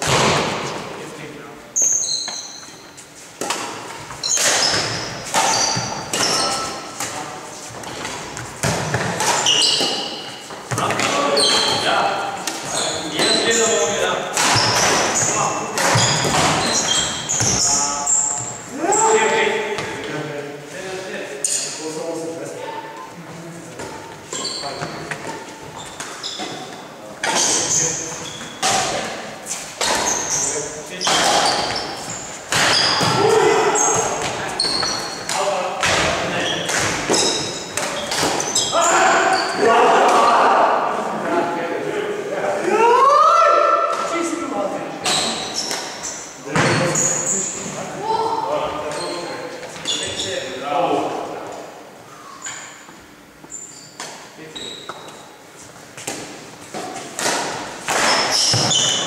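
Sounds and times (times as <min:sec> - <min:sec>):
sneakers squeaking on wooden floor: 0:01.6 - 0:20.2, 0:22.5 - 0:39.7, 0:45.0 - 0:47.7, 0:48.8 - 0:50.5, 0:52.2 - 0:59.0
rackets striking shuttlecock: 0:14.3 - 0:17.6.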